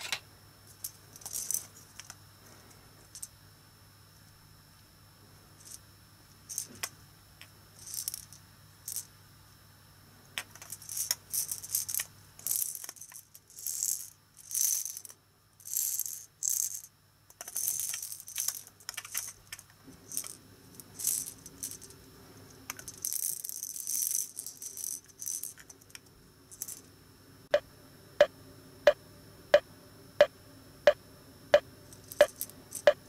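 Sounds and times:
plastic toy shakers rattling: 0.0 - 2.2, 6.4 - 6.9, 7.8 - 9.1, 10.4 - 22.0, 22.6 - 26.9, 31.9 - 33.0.

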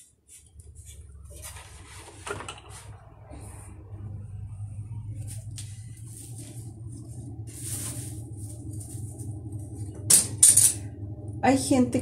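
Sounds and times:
steady low hum: 0.0 - 12.0
yarn rustling and brushing: 5.2 - 9.4.

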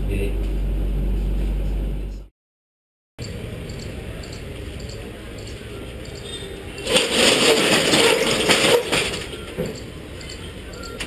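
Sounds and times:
street noise: 3.2 - 11.0
metal roller shutter rattling: 6.8 - 9.6.

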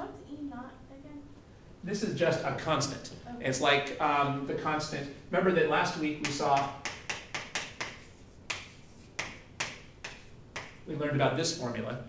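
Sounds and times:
chalk clicking on chalkboard: 6.2 - 10.9.

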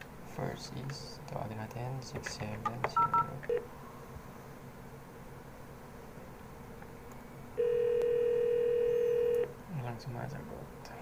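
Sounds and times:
phone ringback tone: 7.6 - 9.5.

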